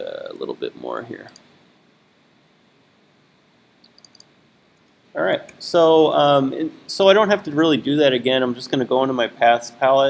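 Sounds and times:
computer mouse button clicks: 0:03.8 - 0:04.3.

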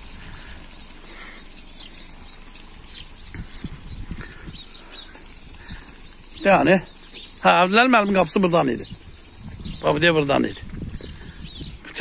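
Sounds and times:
faint bird chirps: 0:00.0 - 0:12.0
footsteps on wet dirt path: 0:00.0 - 0:12.0.

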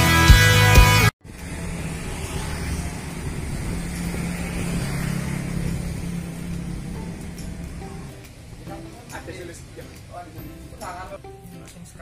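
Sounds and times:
vehicle engine humming: 0:00.0 - 0:11.5
street background noise: 0:00.0 - 0:12.0.

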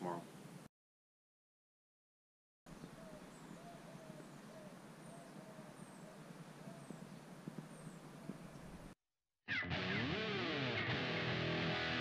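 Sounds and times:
faint outdoor background noise: 0:00.0 - 0:00.7, 0:02.7 - 0:09.0
low bird call: 0:02.7 - 0:08.9.

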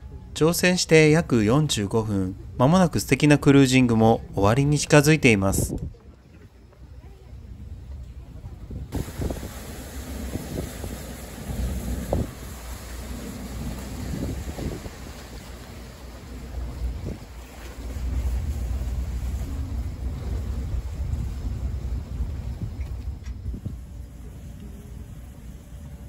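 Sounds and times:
ship engine rumble: 0:00.0 - 0:26.0
wind on microphone: 0:05.4 - 0:06.6, 0:07.7 - 0:26.0.

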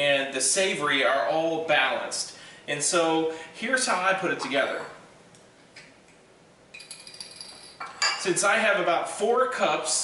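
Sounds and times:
metal spoon clinking on glass bottle: 0:06.8 - 0:08.3.

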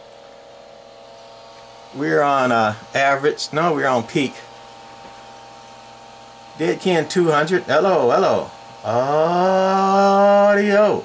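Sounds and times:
amplifier fan hum: 0:00.0 - 0:11.0.

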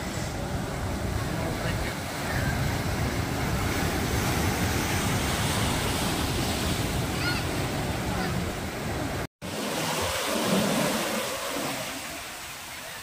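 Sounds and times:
waves breaking and washing in: 0:00.0 - 0:13.0.

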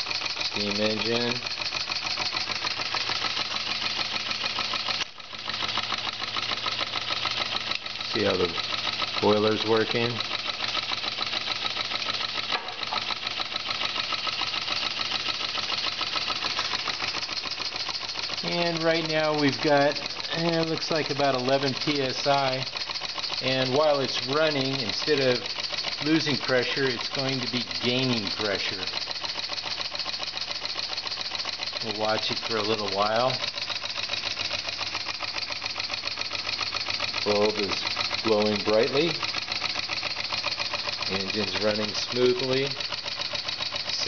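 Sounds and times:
model steam engine running fast: 0:00.0 - 0:44.0.

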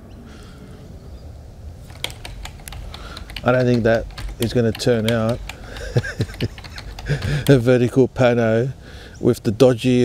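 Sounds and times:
light irregular clicks: 0:01.9 - 0:07.8.

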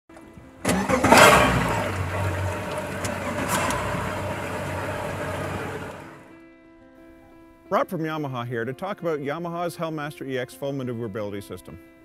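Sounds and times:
boat engine starting and idling: 0:00.2 - 0:06.2.

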